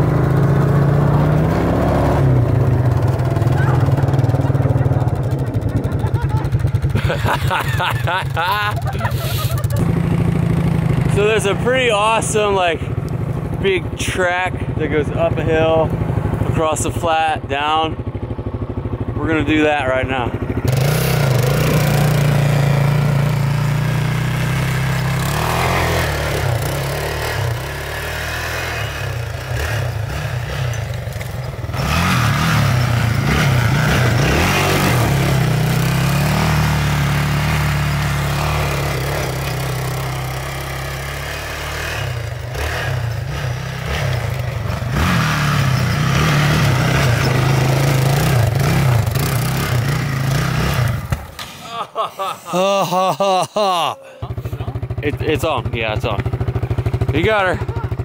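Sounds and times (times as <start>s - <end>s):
atv engine revving: 0.0s - 51.6s, 52.5s - 58.0s.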